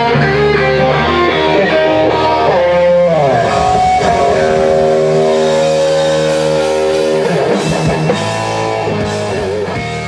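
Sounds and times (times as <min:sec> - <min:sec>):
live rock band: 0:00.0 - 0:10.0
electric guitar sustained chord: 0:01.8 - 0:09.6.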